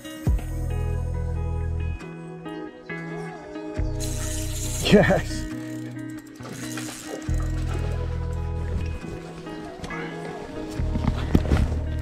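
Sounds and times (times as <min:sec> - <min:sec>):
plucked guitar background music: 0:00.0 - 0:12.0.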